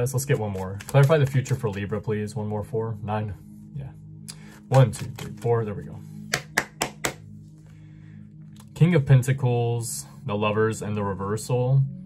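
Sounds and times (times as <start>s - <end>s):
quiet background music: 0.0s - 12.0s
cards tapping on a table: 6.3s - 7.2s.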